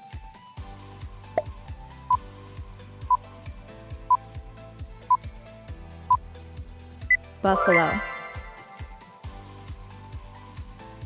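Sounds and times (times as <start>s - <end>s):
background music with steady beat: 0.0s - 11.0s
countdown timer beeps: 7.1s - 9.0s.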